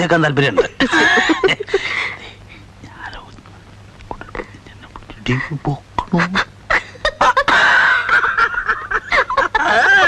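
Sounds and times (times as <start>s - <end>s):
man and woman laughing: 0.6s - 2.1s, 6.1s - 10.0s
long high-pitched laugh: 6.2s - 10.0s.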